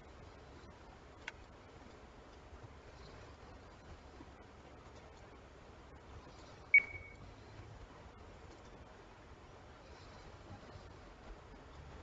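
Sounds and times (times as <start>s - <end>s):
faint background hum: 0.0s - 12.0s
high electronic beep: 6.8s - 7.2s.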